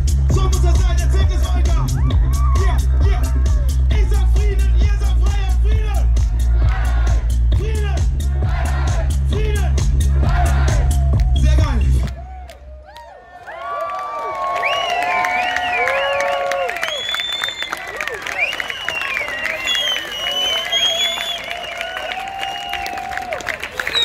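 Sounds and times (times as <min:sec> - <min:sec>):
bass-heavy music over a pa: 0:00.0 - 0:12.5
crowd cheering and shouting: 0:00.0 - 0:24.0
people clapping: 0:06.6 - 0:06.9, 0:12.0 - 0:24.0.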